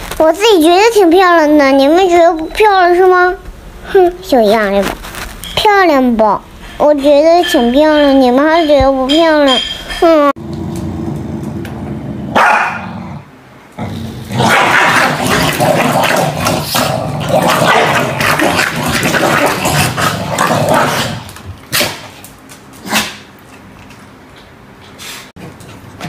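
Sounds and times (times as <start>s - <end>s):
dogs growling and barking: 10.4s - 22.2s.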